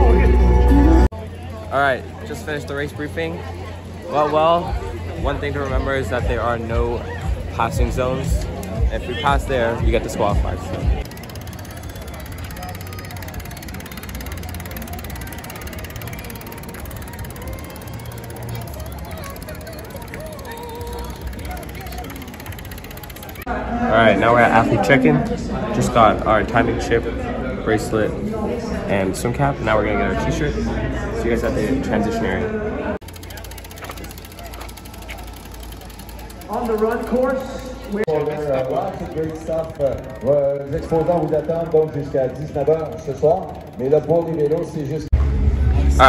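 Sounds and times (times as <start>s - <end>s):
faint voices: 0.0s - 45.1s
people and street noise: 0.0s - 46.0s
bicycle freewheel ticking: 1.2s - 23.5s, 33.0s - 45.1s.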